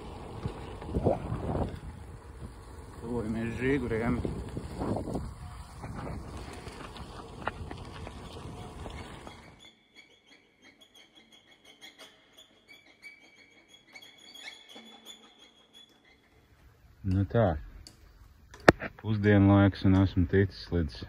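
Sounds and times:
tyres on dirt track: 0.0s - 21.0s
wind rushing over microphone: 0.3s - 9.2s
faint bird chirps: 9.0s - 16.6s.

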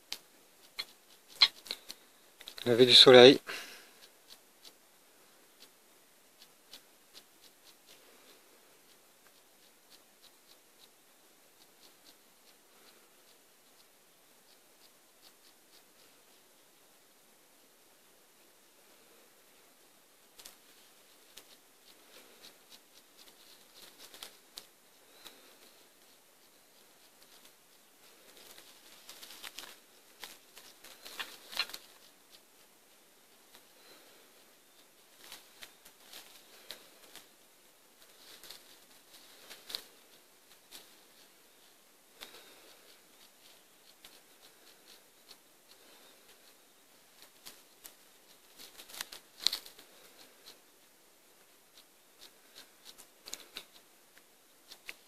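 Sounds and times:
faint clicks and crackles: 0.0s - 2.9s, 20.2s - 55.0s
quiet hiss: 0.0s - 55.0s.

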